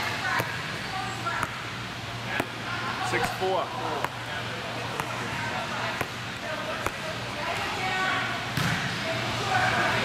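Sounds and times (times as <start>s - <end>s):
volleyball bouncing on gym floor: 0.0s - 7.8s, 8.5s - 9.0s
voices of players and spectators: 0.0s - 10.0s.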